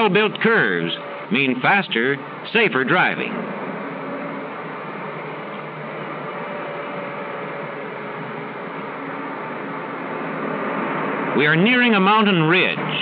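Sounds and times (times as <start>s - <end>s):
film soundtrack hiss: 0.0s - 13.0s.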